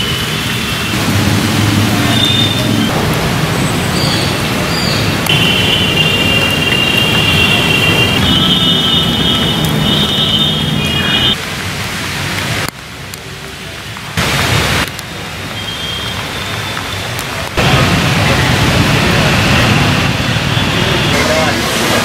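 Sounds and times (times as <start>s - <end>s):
outdoor noise: 0.0s - 22.0s
indistinct voices: 0.9s - 11.4s.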